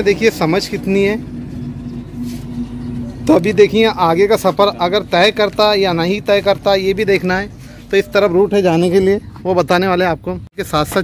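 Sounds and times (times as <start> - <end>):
vehicle engine humming: 0.0 - 11.0.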